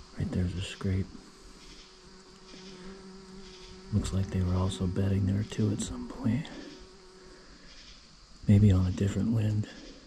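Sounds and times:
faint woodland background: 0:00.0 - 0:10.0
low insect-like buzzing hum: 0:00.0 - 0:10.0.

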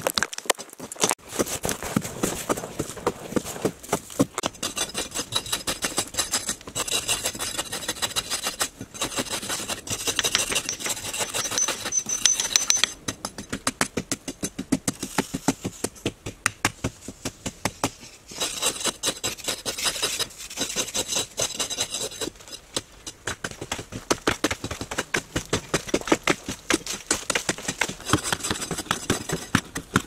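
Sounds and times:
soil scraping and trickling: 0:00.0 - 0:13.0, 0:18.0 - 0:23.3.

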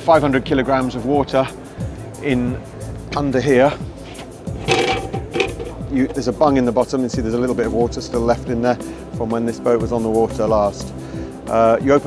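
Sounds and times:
background music: 0:00.0 - 0:12.0
plastic threads scraping: 0:04.0 - 0:06.3.

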